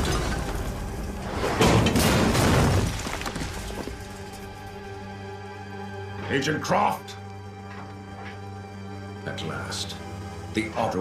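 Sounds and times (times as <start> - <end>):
explosion blast: 0.0 - 3.7
background music: 0.0 - 11.0.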